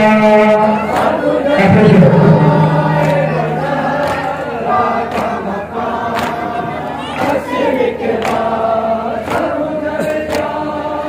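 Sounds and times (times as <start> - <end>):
men chanting in unison: 0.0 - 11.0.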